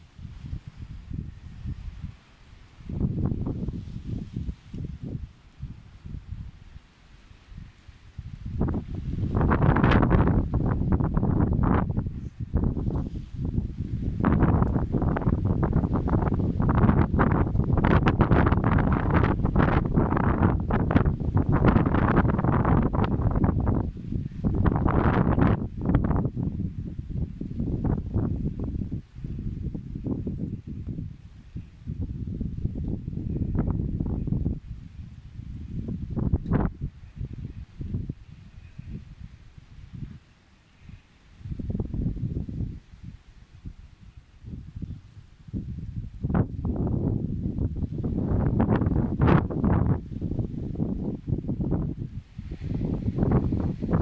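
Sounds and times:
leaves rustling: 0:00.0 - 0:54.0
wind buffeting microphone: 0:00.0 - 0:54.0.

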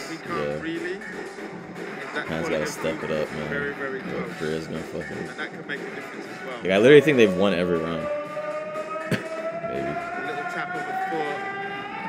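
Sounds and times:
person speaking: 0:00.0 - 0:00.6, 0:02.2 - 0:05.3
long held tone rising in pitch: 0:07.0 - 0:12.0.

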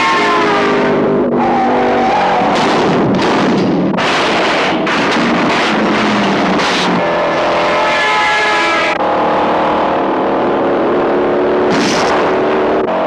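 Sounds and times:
car engines running hard: 0:00.0 - 0:13.0
road and tyre noise: 0:00.0 - 0:13.0.

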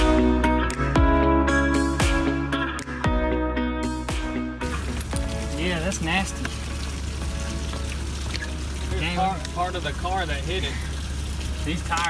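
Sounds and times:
guitar music: 0:00.0 - 0:10.6
outdoor hiss: 0:04.6 - 0:12.0.

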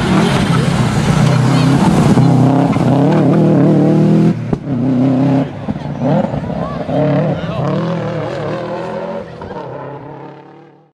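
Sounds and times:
car engine revving: 0:00.0 - 0:10.9.

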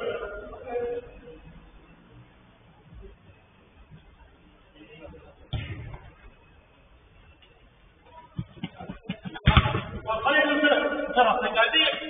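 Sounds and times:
football being kicked: 0:05.5 - 0:06.2, 0:09.3 - 0:10.1.

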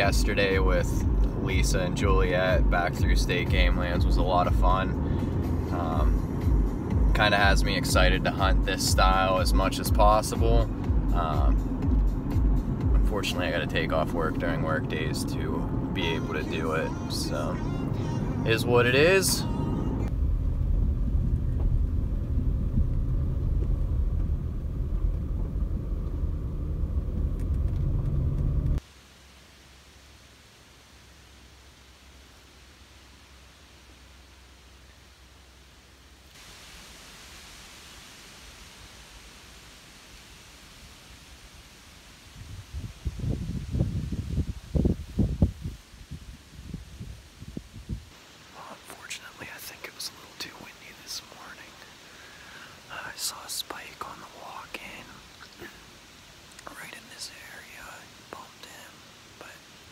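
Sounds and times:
low rumbling bursts: 0:00.0 - 0:28.8
car driving on dirt road: 0:00.0 - 0:28.9
man whispering: 0:13.1 - 0:17.8, 0:48.5 - 0:52.0, 0:52.8 - 0:55.8, 0:56.6 - 0:59.7.

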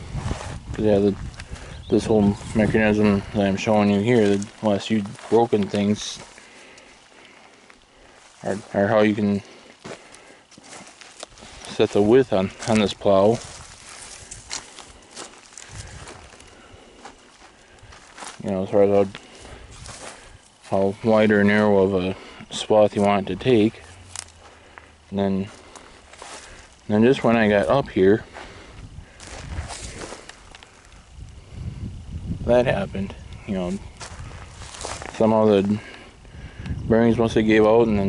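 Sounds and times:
wind rumble on microphone: 0:00.0 - 0:04.3, 0:12.5 - 0:15.0, 0:15.6 - 0:16.9, 0:19.5 - 0:20.4, 0:27.6 - 0:35.1, 0:35.7 - 0:38.0
footsteps crunching on dry soil: 0:00.0 - 0:38.0.

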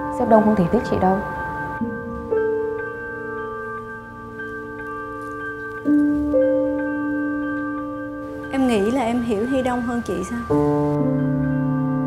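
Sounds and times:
soft slow background music: 0:00.0 - 0:12.0.

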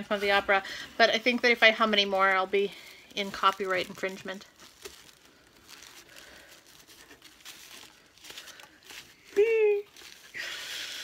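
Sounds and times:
tissue paper rustling: 0:00.0 - 0:11.0.

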